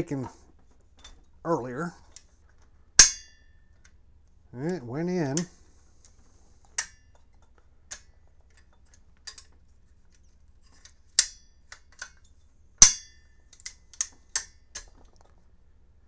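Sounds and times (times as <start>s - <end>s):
metallic clicks of rifle parts: 5.3s - 12.5s, 13.4s - 15.4s.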